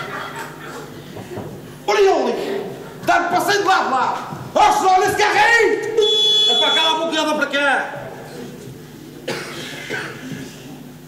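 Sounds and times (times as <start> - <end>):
faint hall background: 0.0 - 11.0
short cough: 9.2 - 10.7.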